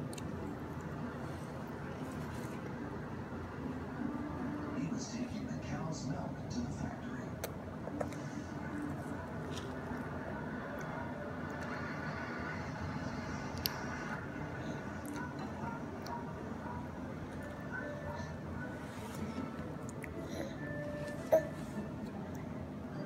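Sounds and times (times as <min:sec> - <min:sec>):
television voices: 0:00.0 - 0:23.0.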